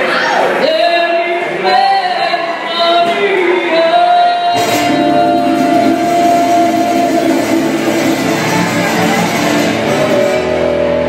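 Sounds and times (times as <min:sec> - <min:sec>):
saxophones: 0:04.6 - 0:10.6
congas: 0:04.6 - 0:10.7
drum kit: 0:04.6 - 0:10.7
electric guitar: 0:04.6 - 0:11.0
live band playing: 0:04.6 - 0:11.0.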